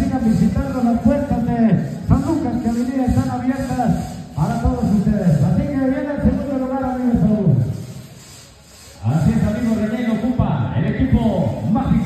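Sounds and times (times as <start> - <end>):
man's voice over loudspeakers: 0.0 - 7.7, 9.0 - 12.0.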